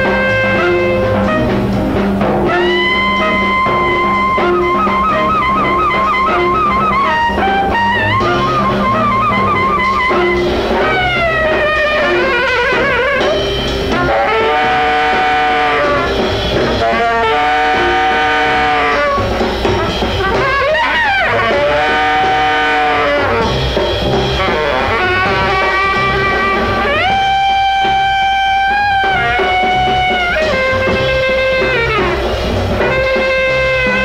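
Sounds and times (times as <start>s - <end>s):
band playing live: 0.0s - 34.0s.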